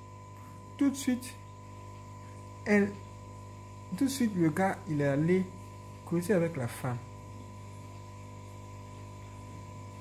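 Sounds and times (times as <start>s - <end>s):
low electrical hum and buzz: 0.0s - 10.0s.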